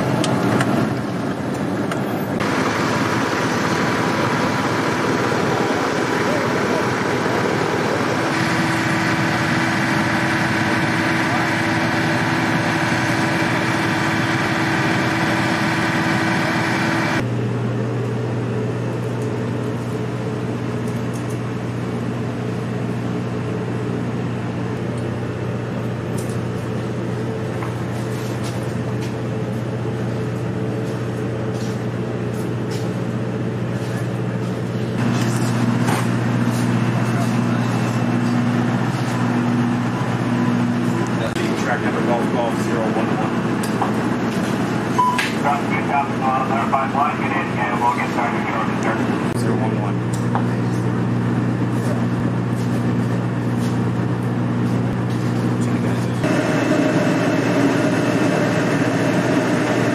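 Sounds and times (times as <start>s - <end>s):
deep equipment hum: 0.0s - 59.9s
military vehicle engine running: 0.0s - 59.9s.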